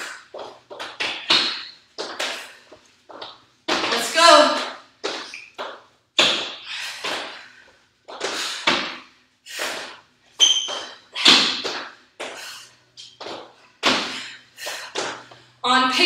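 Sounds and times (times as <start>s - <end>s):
landing and dumbbell thuds: 0.0s - 2.5s, 3.1s - 7.5s, 8.1s - 15.3s.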